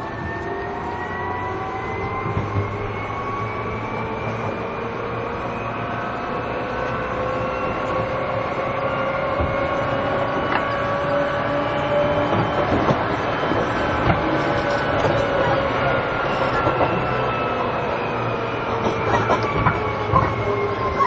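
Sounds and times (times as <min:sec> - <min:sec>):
electric train motor whine: 0:00.0 - 0:21.0
wheels rumbling on rails: 0:00.0 - 0:21.0.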